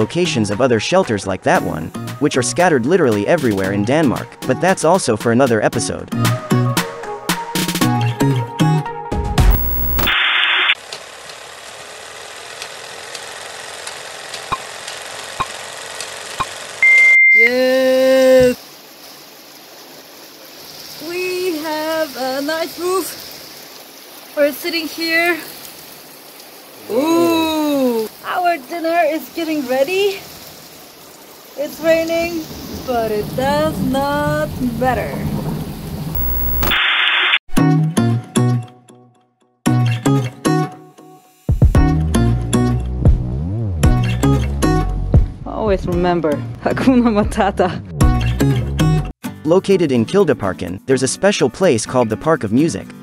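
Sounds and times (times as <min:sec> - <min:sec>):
short high beep: 0:09.5 - 0:10.7, 0:16.8 - 0:17.5, 0:36.2 - 0:36.8
film hiss: 0:09.5 - 0:10.8, 0:17.4 - 0:32.6, 0:36.2 - 0:37.4
loud held pitched tone: 0:09.5 - 0:10.8, 0:36.2 - 0:37.2
static-like hiss: 0:09.5 - 0:10.8, 0:36.2 - 0:37.4
person speaking: 0:17.3 - 0:18.6
steady rain falling: 0:17.4 - 0:36.7.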